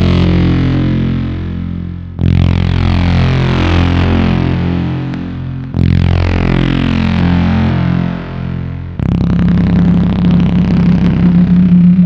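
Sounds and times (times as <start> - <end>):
deep bass note: 0.0 - 12.0
distorted electric guitar chord: 0.0 - 12.0.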